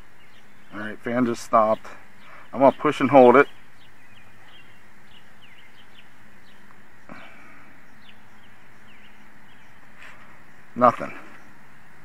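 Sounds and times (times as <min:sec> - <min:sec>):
small birds chirping: 0:00.0 - 0:12.0
steady low hum: 0:00.0 - 0:12.0.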